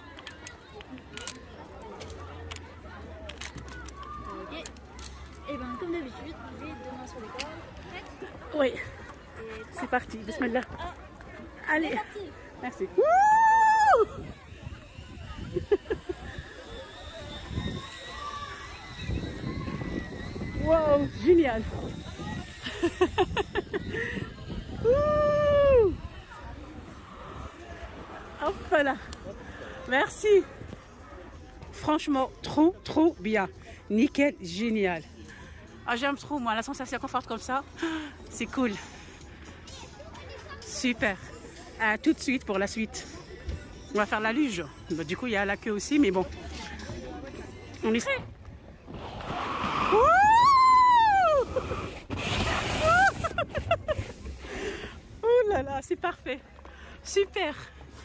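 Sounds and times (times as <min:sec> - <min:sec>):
person whooping: 0:13.0 - 0:14.1, 0:24.8 - 0:26.0, 0:49.9 - 0:51.6, 0:52.8 - 0:53.2
woman's excited cry: 0:13.0 - 0:14.1, 0:49.9 - 0:51.5.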